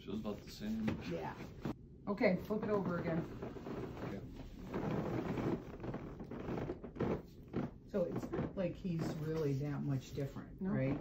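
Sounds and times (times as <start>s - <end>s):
bedsheets and mattress rustling: 2.8s - 11.0s.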